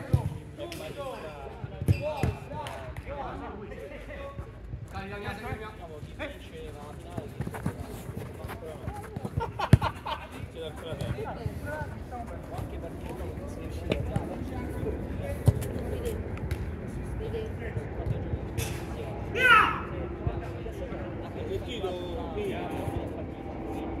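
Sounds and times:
players shouting: 0:19.3 - 0:19.9.

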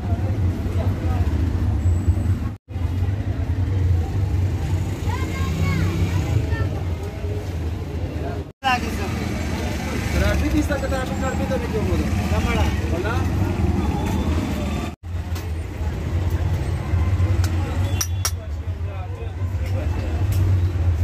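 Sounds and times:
low rumble of road traffic: 0:00.0 - 0:21.0.

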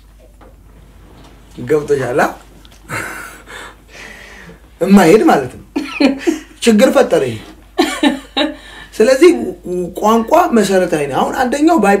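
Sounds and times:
man speaking: 0:01.6 - 0:02.5, 0:04.8 - 0:05.7, 0:09.0 - 0:12.0.

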